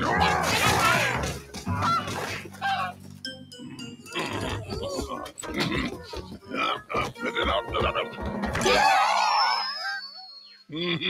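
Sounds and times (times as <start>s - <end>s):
cartoon birds squawking: 0.1s - 3.0s.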